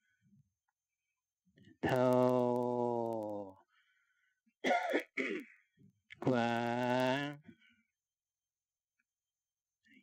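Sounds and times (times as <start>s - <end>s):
man clearing his throat: 4.6s - 5.6s.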